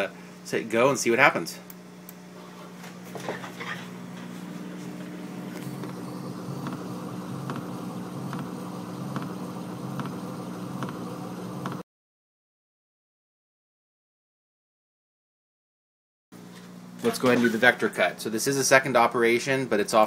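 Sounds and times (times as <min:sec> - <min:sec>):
laser cutter machine hum: 0:03.3 - 0:11.8.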